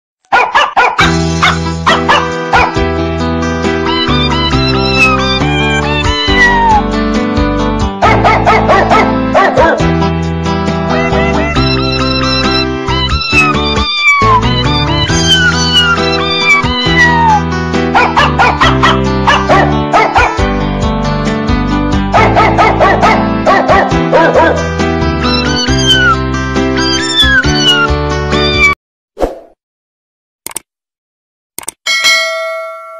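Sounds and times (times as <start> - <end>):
dog barks: 0.3 - 2.8, 8.0 - 9.9, 18.0 - 20.4, 22.1 - 24.6
music backing: 1.0 - 28.8
ringtone music with beat: 3.8 - 6.6, 10.9 - 17.4.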